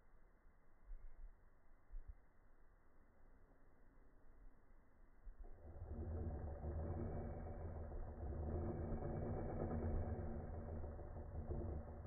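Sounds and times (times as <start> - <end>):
cordless drill motor running: 5.4 - 12.0.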